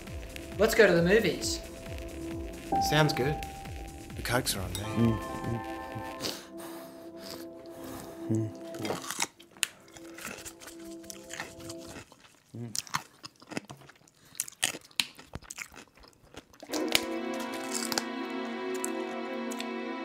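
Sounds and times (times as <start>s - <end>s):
background music: 0.0s - 12.0s, 16.7s - 20.0s
person humming mm: 5.4s - 8.8s
person crunching and chewing food: 7.2s - 19.7s.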